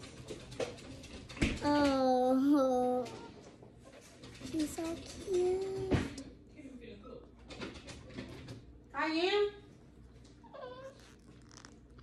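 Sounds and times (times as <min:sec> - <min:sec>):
small clicks and fiddling: 0:04.2 - 0:06.2.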